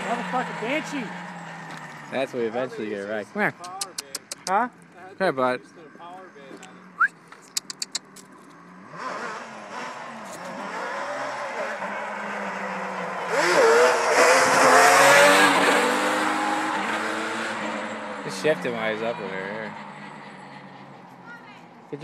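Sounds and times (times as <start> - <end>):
atv engine revving past: 8.0 - 21.0.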